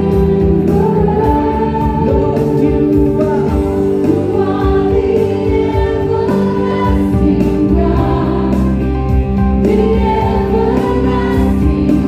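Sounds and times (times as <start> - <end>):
keyboard sustained chords: 0.0 - 12.0
voices singing worship chorus: 0.0 - 12.0.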